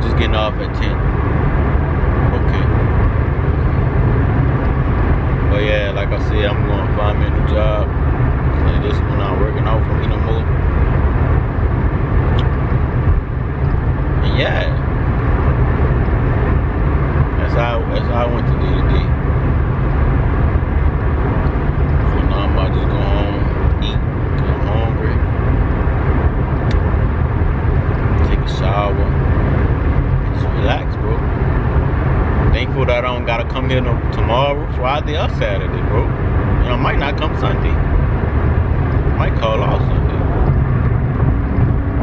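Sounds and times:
engine and road rumble in cabin: 0:00.0 - 0:42.0.

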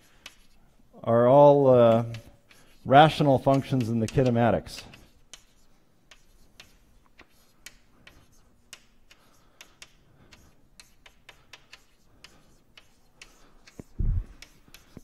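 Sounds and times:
chalk tapping on blackboard: 0:00.0 - 0:00.6, 0:01.9 - 0:15.0.

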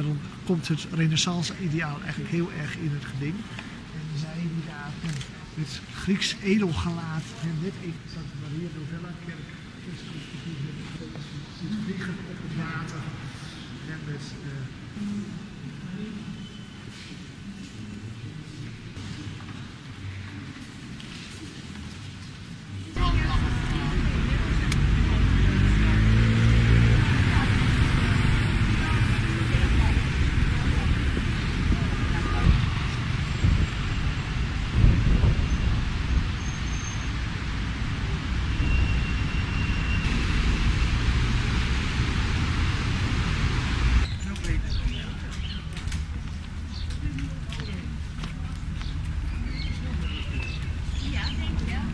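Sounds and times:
road traffic noise: 0:00.0 - 0:51.9
murmur of voices in a church: 0:03.4 - 0:24.8
wind rumbling on microphone: 0:26.6 - 0:51.9.

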